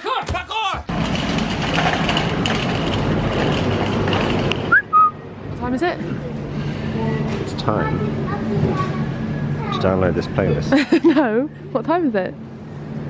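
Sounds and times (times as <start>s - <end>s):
shopping trolley rattling: 0.3s - 4.7s.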